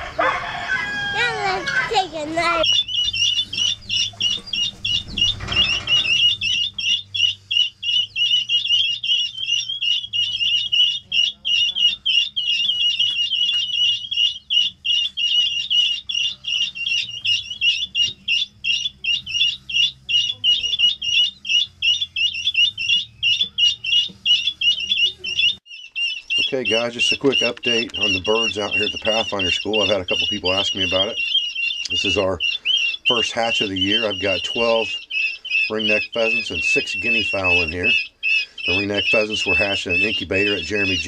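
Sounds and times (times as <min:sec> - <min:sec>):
chicks peeping: 0:00.0 - 0:41.0.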